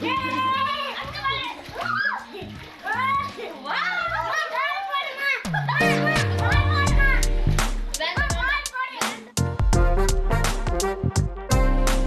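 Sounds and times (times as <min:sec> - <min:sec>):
children shouting and squealing: 0:00.0 - 0:07.3
music with deep bass: 0:05.5 - 0:08.7, 0:09.4 - 0:12.0.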